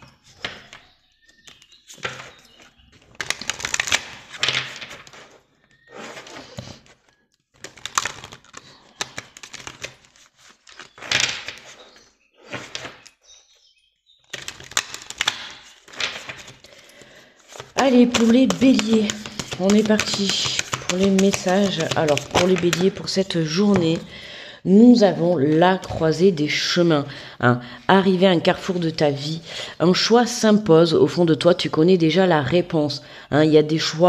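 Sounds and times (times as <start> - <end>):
cards being shuffled: 1.4 - 13.1, 14.3 - 16.7, 17.5 - 24.0.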